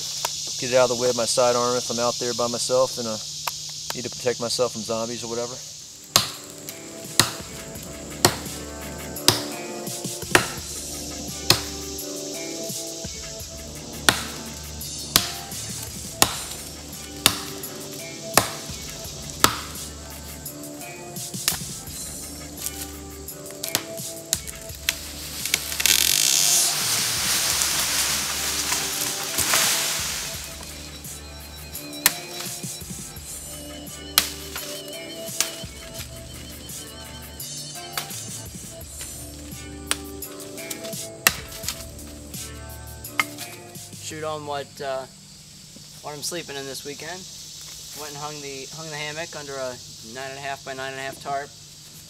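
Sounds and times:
background music: 0:05.1 - 0:45.0
knife chopping into wood: 0:06.1 - 0:06.4, 0:07.2 - 0:07.5, 0:08.2 - 0:08.6, 0:09.2 - 0:09.6, 0:10.2 - 0:10.7, 0:11.5 - 0:11.8, 0:14.1 - 0:17.7, 0:18.4 - 0:19.8, 0:23.6 - 0:26.0, 0:34.2 - 0:34.7, 0:40.7 - 0:41.9
broad swell of noise: 0:25.1 - 0:31.3.

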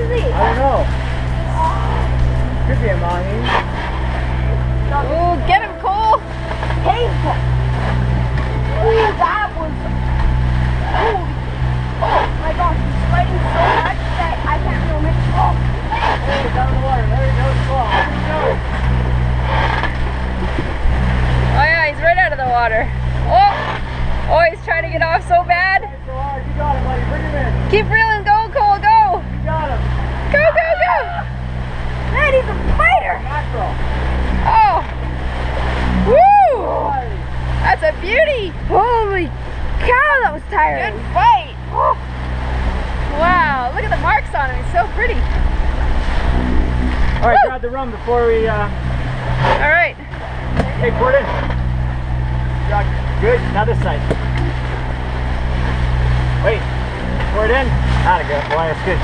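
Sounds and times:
voices calling out: 0:00.0 - 0:25.6, 0:27.5 - 0:48.0
boat engine hum: 0:00.0 - 0:59.0
water rushing past hulls: 0:00.0 - 0:59.0.

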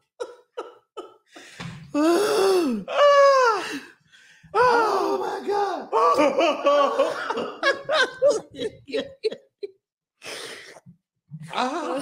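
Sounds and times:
woman laughing: 0:00.0 - 0:01.2, 0:06.2 - 0:09.8.

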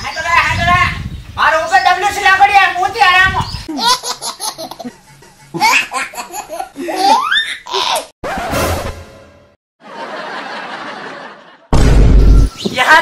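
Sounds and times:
man laughing and vocalising: 0:03.7 - 0:08.1.

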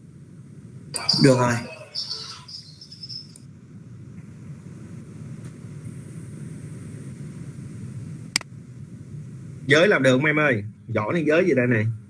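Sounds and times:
open microphone background noise: 0:00.0 - 0:12.0.

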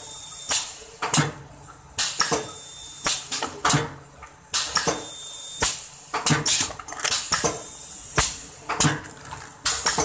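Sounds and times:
packing machine running: 0:04.6 - 0:10.0.

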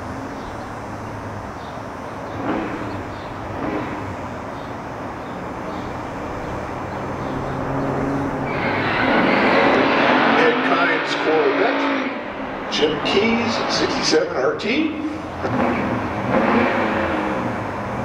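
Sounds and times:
drag car engines running: 0:00.0 - 0:18.0
engine revving with tyres spinning: 0:01.6 - 0:04.6, 0:05.6 - 0:14.0, 0:15.2 - 0:18.0.

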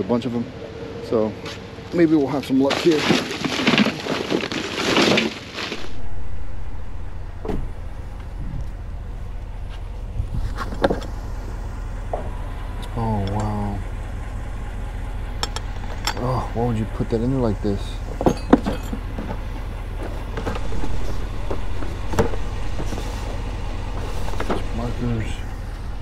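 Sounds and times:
plastic trash bags rustling: 0:02.6 - 0:06.5
steady low hum: 0:05.4 - 0:26.0.

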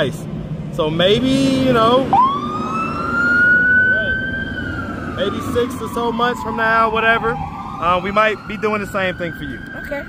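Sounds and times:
emergency vehicle siren wailing: 0:01.5 - 0:10.0.

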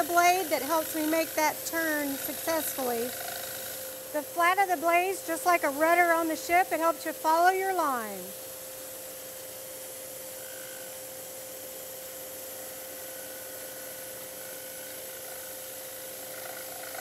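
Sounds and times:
scroll saw cutting wood: 0:00.0 - 0:04.1, 0:13.1 - 0:17.0.

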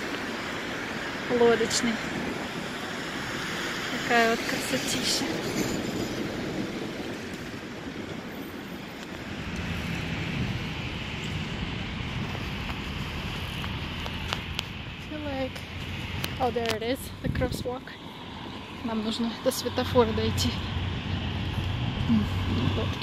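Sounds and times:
distant traffic: 0:00.0 - 0:23.0
wind: 0:00.0 - 0:23.0
people talking: 0:01.3 - 0:02.1, 0:03.9 - 0:05.4, 0:15.1 - 0:15.6, 0:16.4 - 0:18.0, 0:18.8 - 0:20.7, 0:22.0 - 0:23.0.

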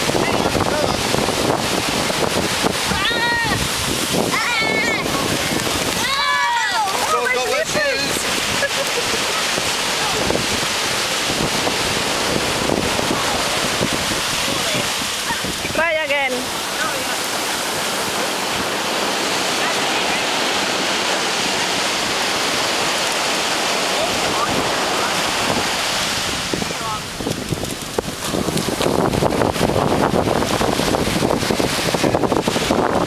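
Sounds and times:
ocean surf on beach: 0:00.0 - 0:33.0
wind buffeting microphone: 0:00.0 - 0:33.0.

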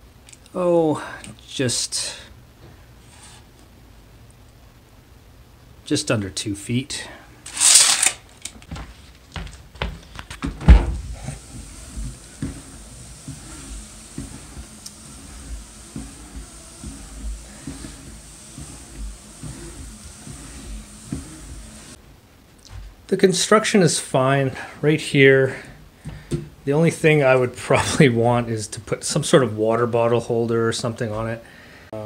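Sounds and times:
soft low thumps: 0:08.8 - 0:22.0.

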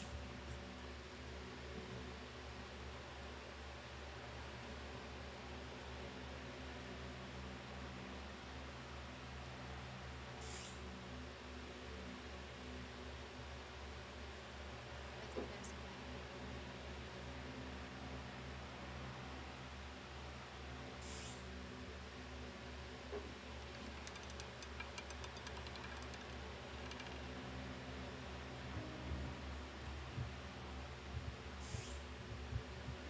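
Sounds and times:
low electrical hum: 0:00.0 - 0:33.0
roulette ball clicking: 0:23.6 - 0:27.6.

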